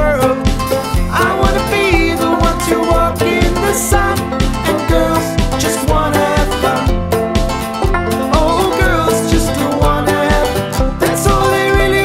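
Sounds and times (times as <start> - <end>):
upbeat band music: 0.0 - 12.0.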